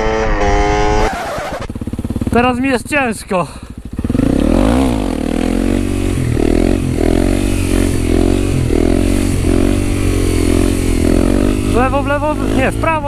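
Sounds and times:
motorcycle engine revving: 0.0 - 13.0.

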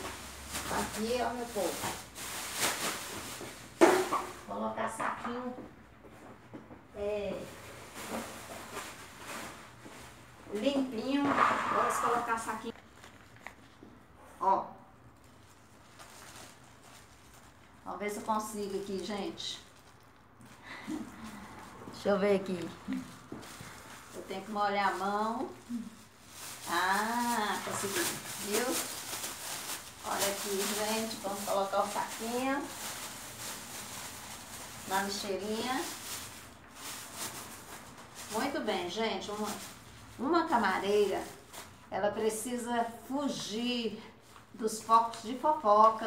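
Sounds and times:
plastic bag rustling: 0.0 - 4.7, 7.1 - 14.2, 15.0 - 42.7.

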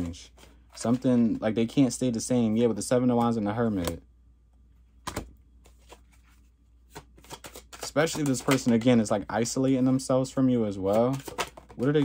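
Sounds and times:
cards flicking and snapping: 6.9 - 9.0.

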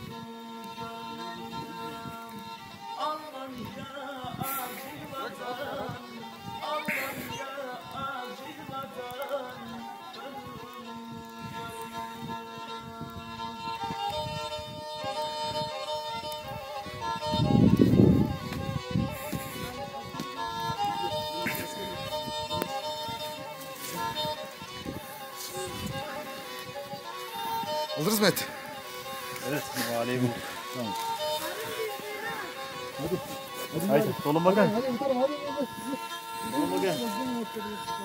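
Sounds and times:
bowed fiddle melody: 0.0 - 38.0.

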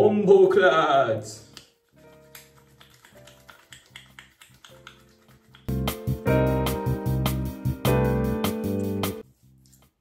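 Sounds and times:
quiet background music: 0.0 - 10.0
wet hands clapping: 1.5 - 6.2.

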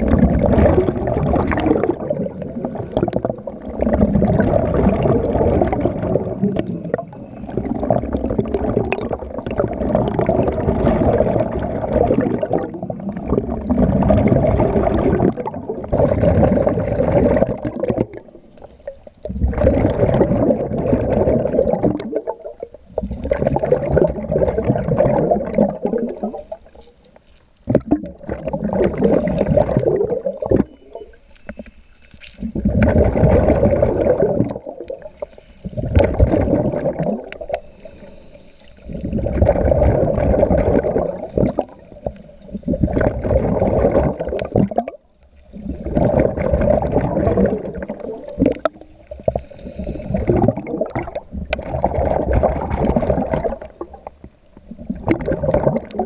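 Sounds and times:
underwater regulator exhaust bubbles: 0.0 - 56.0.

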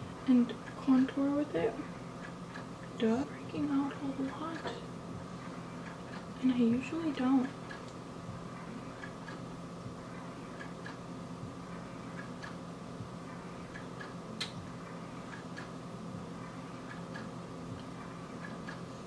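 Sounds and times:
low hum: 0.0 - 19.0
faint regular ticking: 0.2 - 15.8, 16.4 - 18.9.

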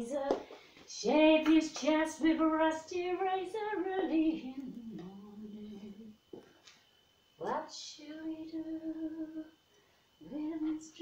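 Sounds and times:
woman singing without words: 0.0 - 6.3, 7.4 - 9.6, 10.2 - 11.0.

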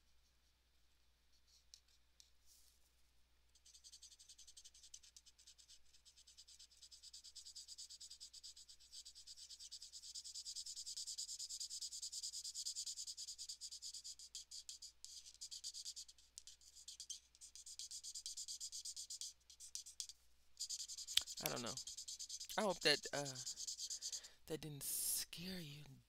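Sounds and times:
marker scratching on paper: 1.3 - 2.8, 3.5 - 24.3.

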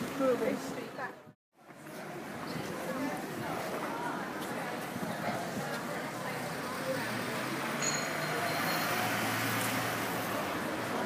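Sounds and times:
street noise: 0.0 - 11.0.

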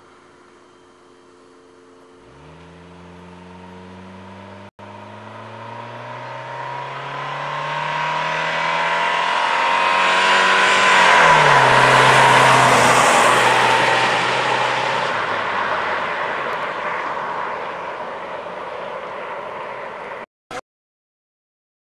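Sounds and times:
car driving past at speed: 2.2 - 20.2.

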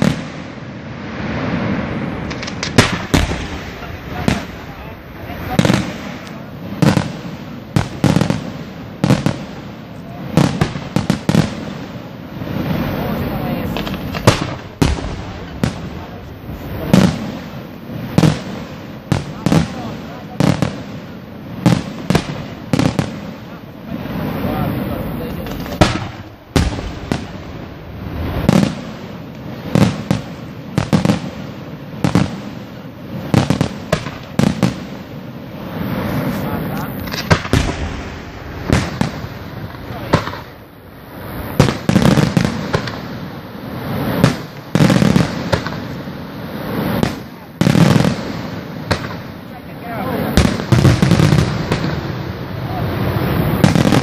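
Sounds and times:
firework shells bursting: 0.0 - 54.0.

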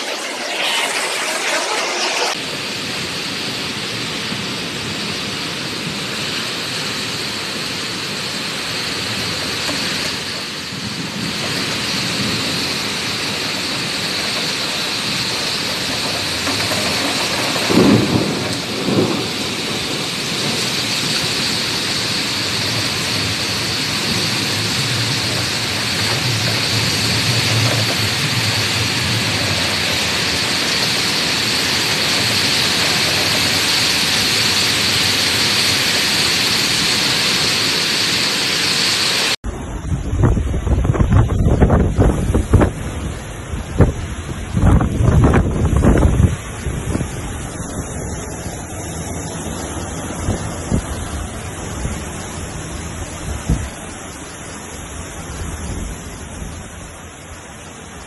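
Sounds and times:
heavy rain: 0.0 - 58.0
strong wind: 0.0 - 58.0.

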